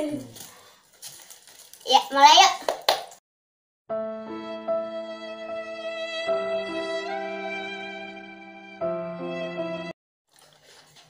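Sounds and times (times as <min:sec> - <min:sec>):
chicken pieces rustling on paper: 0:00.2 - 0:02.4, 0:10.3 - 0:11.0.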